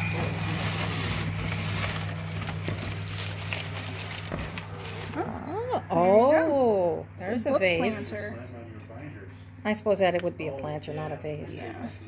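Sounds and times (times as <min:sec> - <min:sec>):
packing paper rustling and crinkling: 0:00.0 - 0:05.4
steady low hum: 0:00.0 - 0:12.0.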